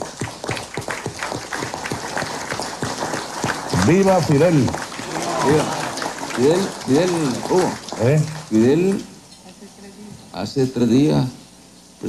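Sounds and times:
small group applauding: 0.0s - 9.1s.

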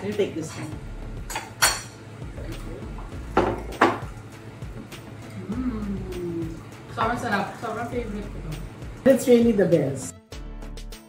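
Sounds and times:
cutlery and dishes clacking: 0.4s - 2.0s.

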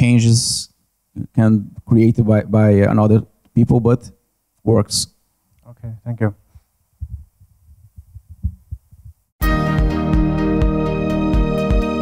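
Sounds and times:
microphone handling thumps: 7.0s - 9.3s.

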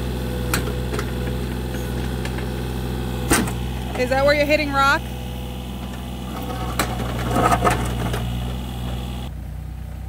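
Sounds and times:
diesel engine running: 0.0s - 10.0s
bucket clattering and scraping: 5.8s - 8.6s.

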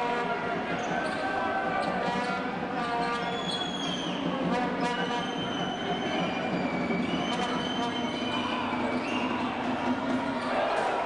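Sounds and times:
arena crowd voices: 0.0s - 11.0s.

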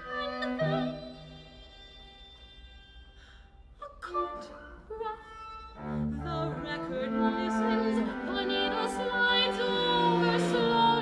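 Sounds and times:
soprano singing: 0.0s - 1.6s, 3.8s - 11.0s
string quartet playing: 0.0s - 2.0s, 5.6s - 11.0s.

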